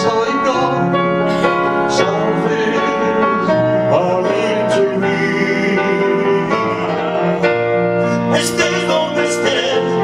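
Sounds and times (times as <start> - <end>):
grand piano: 0.0 - 10.0
man singing a slow ballad: 0.0 - 10.0.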